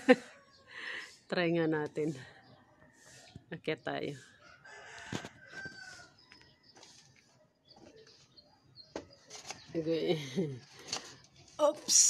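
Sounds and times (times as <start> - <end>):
rooster crowing: 4.4 - 6.4.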